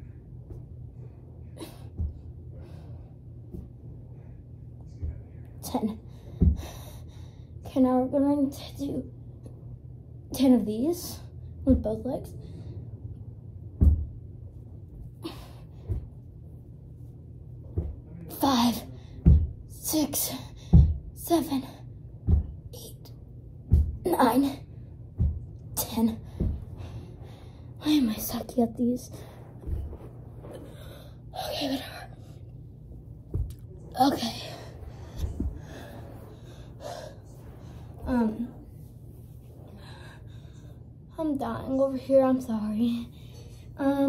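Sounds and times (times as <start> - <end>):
girl breathing hard: 6.1 - 7.6
soft low thump: 13.7 - 14.2.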